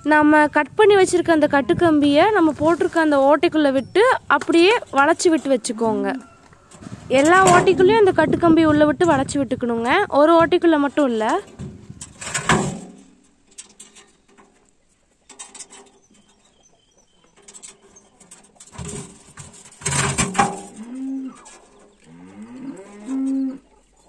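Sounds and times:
cattle mooing: 20.6 - 23.7.

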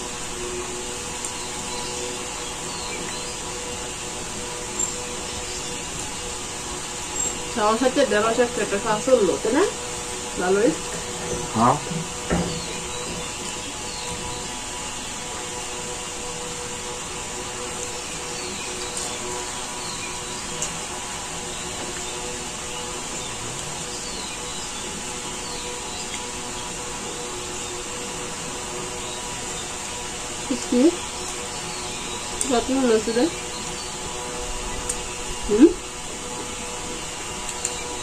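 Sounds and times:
steady hum with high hiss: 0.0 - 38.0.

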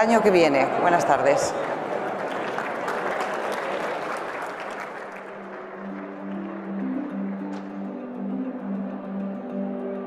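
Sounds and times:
audience applauding: 0.0 - 9.0
music: 5.0 - 10.0.

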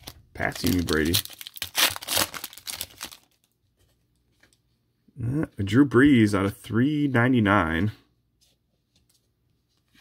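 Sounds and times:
card pack wrapper tearing: 0.0 - 3.5.

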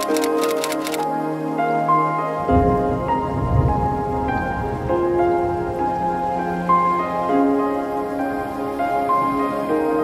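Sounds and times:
low rain-like noise: 0.0 - 10.0
soft instrumental music: 0.0 - 10.0.

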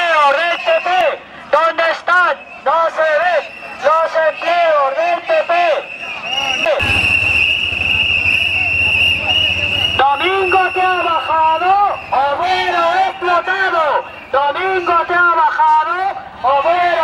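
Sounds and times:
shrill whistle blast: 2.3 - 2.7, 3.4 - 15.3.

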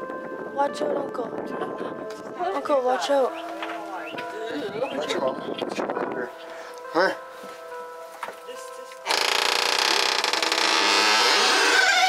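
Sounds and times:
wooden door hinges creaking: 9.0 - 12.0.

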